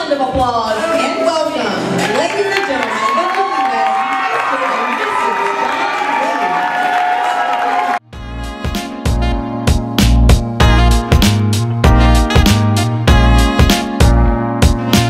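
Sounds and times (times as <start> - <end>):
crowd cheering and clapping: 1.8 - 8.1
background music: 8.1 - 15.0.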